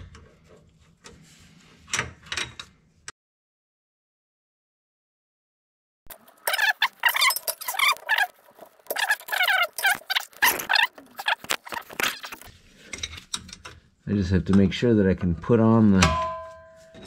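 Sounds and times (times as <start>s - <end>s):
wrench squeaking on metal fitting: 6.2s - 12.5s.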